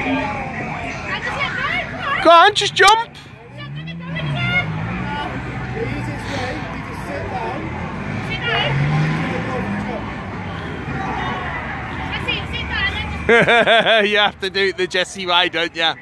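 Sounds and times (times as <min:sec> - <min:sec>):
people talking indistinctly: 0:00.0 - 0:16.0
steady outdoor hum: 0:00.0 - 0:16.0.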